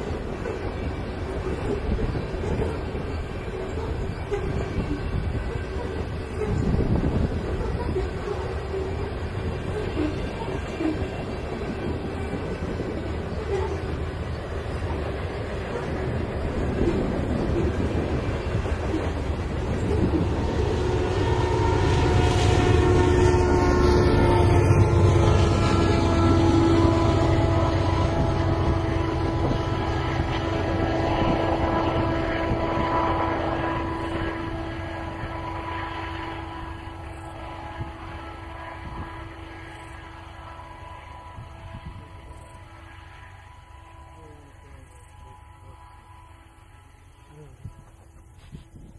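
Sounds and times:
freight train rolling past: 0.0 - 48.9
steady humming tone: 0.0 - 48.9.

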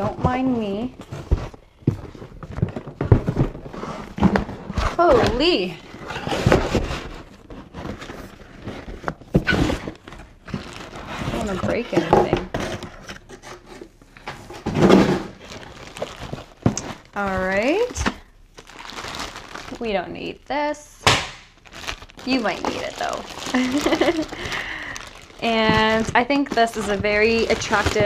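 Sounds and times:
packaging rustling: 0.0 - 20.3, 21.5 - 28.0.

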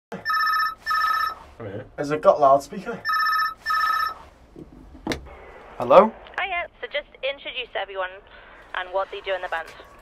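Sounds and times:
telephone ringing: 0.2 - 1.5, 3.0 - 4.3.

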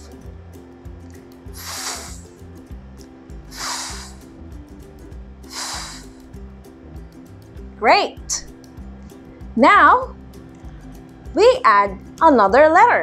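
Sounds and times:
soft background music: 0.0 - 13.0
woman's breathy f sound: 1.6 - 2.2, 3.5 - 4.3, 5.5 - 6.2.

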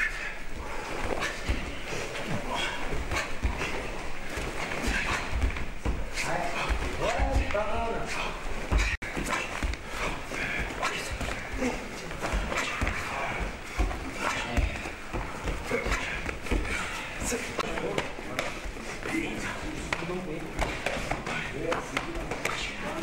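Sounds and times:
bare feet stamping on mats: 2.4 - 7.8, 8.6 - 18.8.

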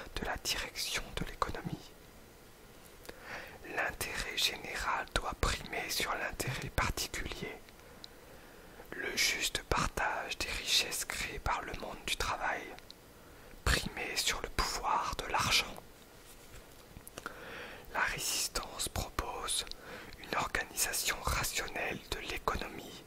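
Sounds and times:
person whispering: 0.0 - 2.0, 3.6 - 7.6, 8.9 - 12.9, 13.6 - 15.8, 17.8 - 23.0.

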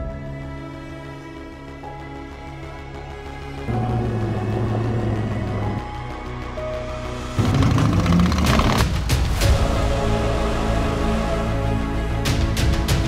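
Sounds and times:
background music with held notes: 0.0 - 13.0.

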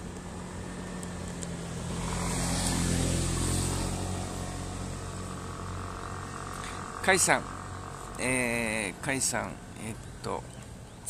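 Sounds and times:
vehicle passing: 0.0 - 10.8.

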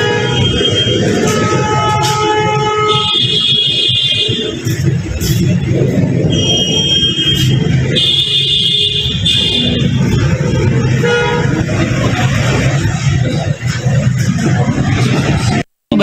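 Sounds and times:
high horn-like toots: 0.0 - 5.5, 6.2 - 11.9.

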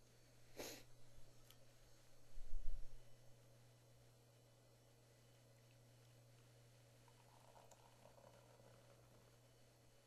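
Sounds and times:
steady low hum: 0.0 - 10.0
beer pouring and foaming: 7.0 - 9.7.

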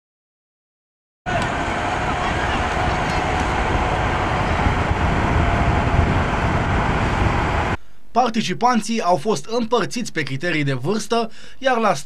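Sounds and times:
low rumble: 1.3 - 7.8.

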